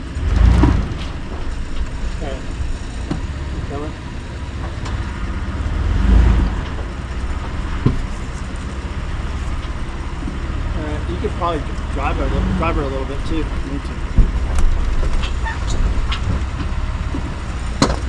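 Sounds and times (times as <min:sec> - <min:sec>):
car engine running low: 0:00.0 - 0:18.0.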